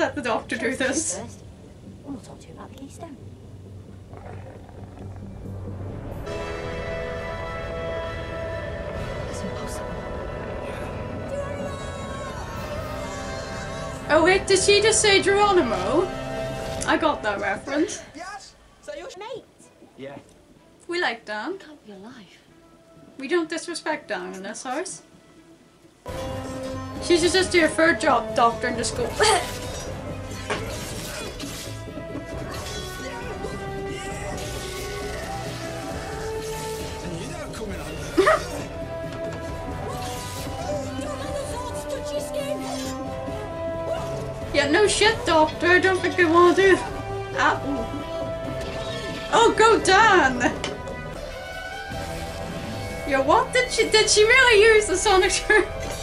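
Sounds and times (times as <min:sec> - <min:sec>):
sustained musical chord: 0:04.8 - 0:18.8.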